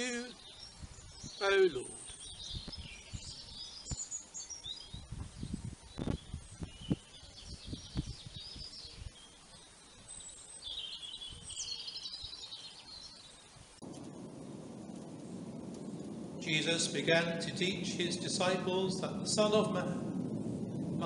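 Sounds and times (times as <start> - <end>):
small birds chirping: 0.0 - 14.2.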